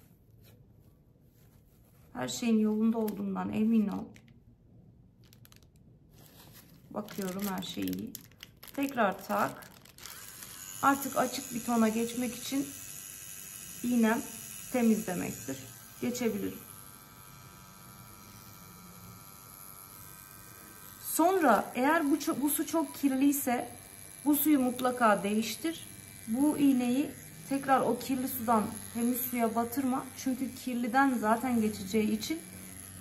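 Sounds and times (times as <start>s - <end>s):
tattoo machine humming: 7.0s - 33.0s.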